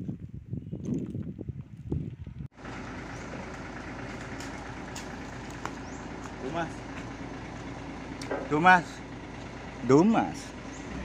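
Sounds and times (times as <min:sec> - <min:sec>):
truck engine idling: 0:02.6 - 0:11.0.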